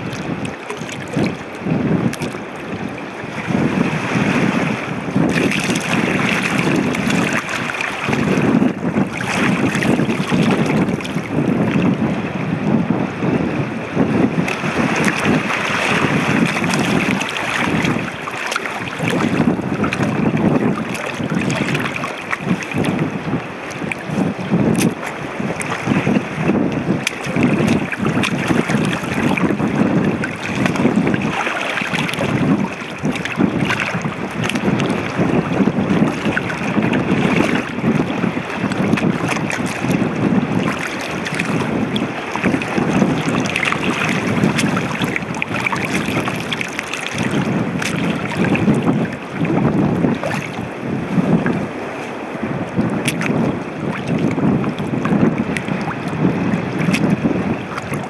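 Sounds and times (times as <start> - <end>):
footsteps sloshing through water: 0.0 - 3.6, 4.8 - 12.1, 14.2 - 58.0
wind on microphone: 0.0 - 58.0.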